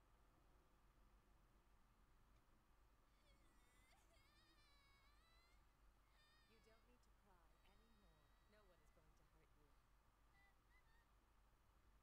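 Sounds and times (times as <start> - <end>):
faint high-pitched wavering sounds: 0.0 - 12.0.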